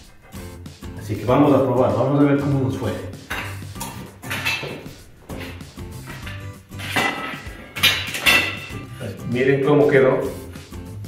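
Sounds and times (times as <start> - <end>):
background music: 0.0 - 11.0
metal conduit clanking: 2.6 - 9.0.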